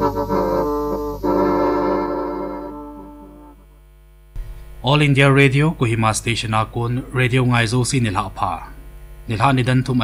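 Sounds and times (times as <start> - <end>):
steady electrical hum: 0.0 - 10.0
newsreader speaking: 4.8 - 10.0.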